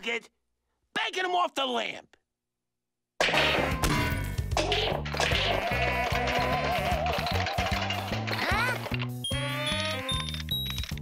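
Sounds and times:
cartoon soundtrack music: 3.3s - 10.5s.

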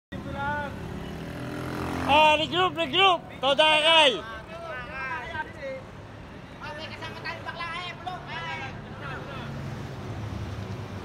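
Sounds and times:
street traffic rumble: 0.1s - 11.0s.

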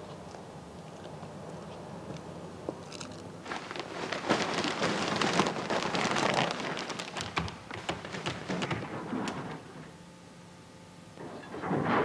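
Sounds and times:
plastic bag rustling: 2.9s - 9.8s.

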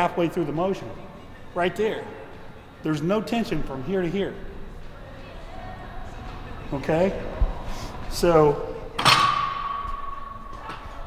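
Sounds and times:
barbell clanking down: 9.0s - 10.8s.

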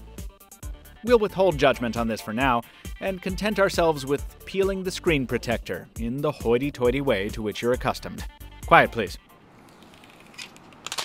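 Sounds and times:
plastic film peeling crackle: 9.7s - 11.0s.

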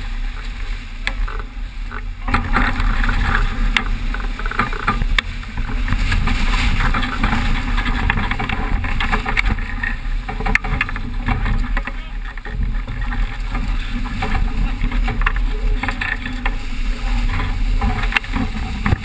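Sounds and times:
water rushing along hull: 0.0s - 19.0s
wind buffeting microphone: 0.0s - 19.0s
sharp clicks and knocks: 1.0s - 16.6s, 17.2s - 19.0s.

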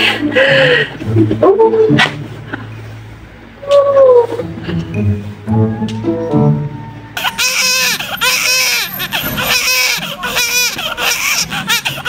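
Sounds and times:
newborn baby crying: 7.2s - 12.0s.

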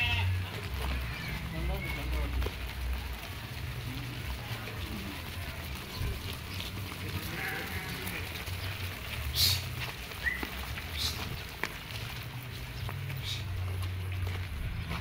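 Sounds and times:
sheep and goats bleating: 0.0s - 13.7s.

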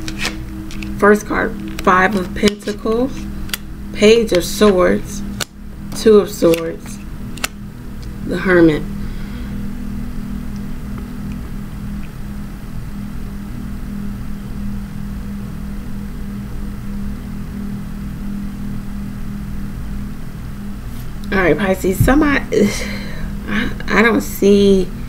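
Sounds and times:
low hum: 0.0s - 25.0s.

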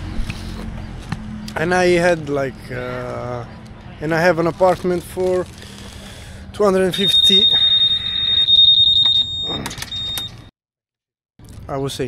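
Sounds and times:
high-pitched electronic alarm tone: 6.8s - 10.4s.

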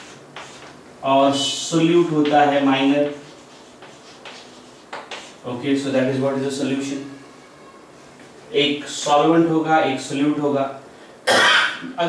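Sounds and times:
chalk scratching on blackboard: 0.0s - 0.8s, 2.2s - 5.5s
chalk tap: 0.0s - 0.8s, 2.2s - 5.4s.

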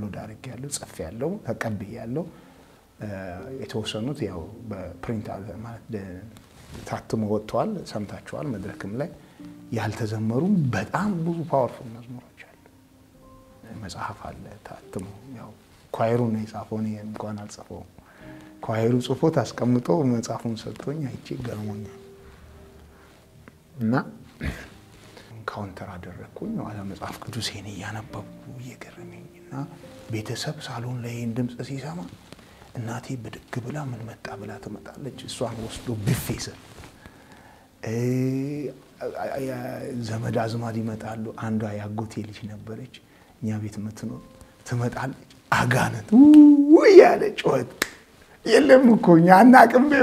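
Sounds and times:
man talking: 3.0s - 12.5s, 18.6s - 22.0s, 37.8s - 47.8s, 48.4s - 50.0s.

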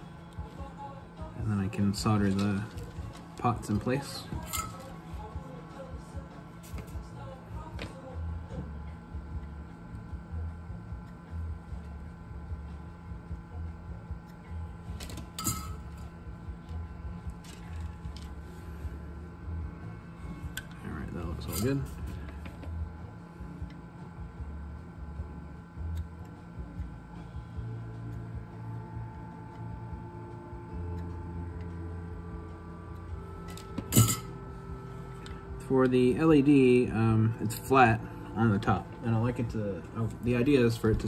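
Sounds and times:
faint steady hum: 0.0s - 41.0s.

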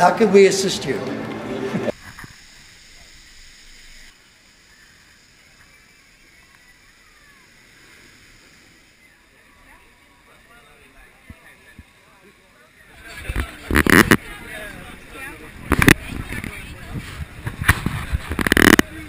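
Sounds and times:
distant voices: 0.0s - 19.0s.

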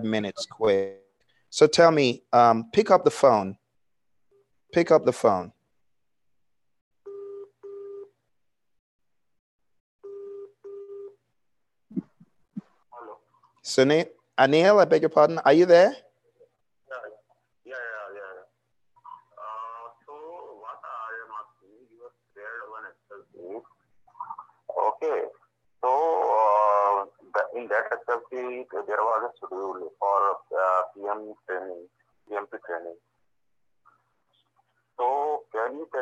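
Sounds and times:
telephone ringback tone: 7.0s - 8.1s, 10.0s - 11.2s
man's voice over phone line: 19.4s - 23.6s, 24.7s - 33.0s, 35.0s - 36.0s.

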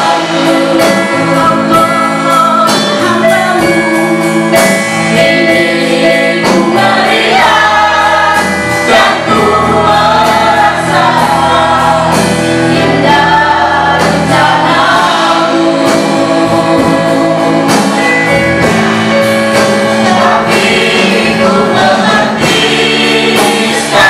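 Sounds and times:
electronic keyboard chords: 0.0s - 24.0s
group singing in unison: 0.0s - 24.0s.

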